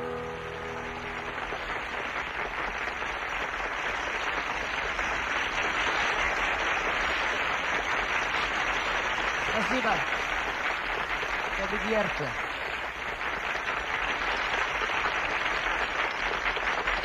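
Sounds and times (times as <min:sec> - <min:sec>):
large audience applauding: 0:00.0 - 0:17.0.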